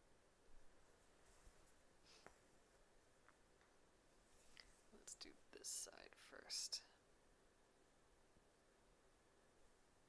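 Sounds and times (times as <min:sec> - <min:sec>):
faint whispering: 0:04.4 - 0:07.1.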